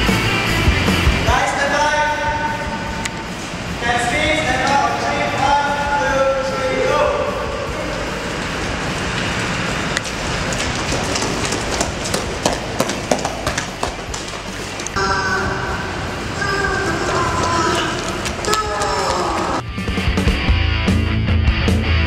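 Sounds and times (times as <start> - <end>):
running footsteps on concrete: 7.9 - 15.0, 17.0 - 19.6
people yelling: 15.0 - 19.6.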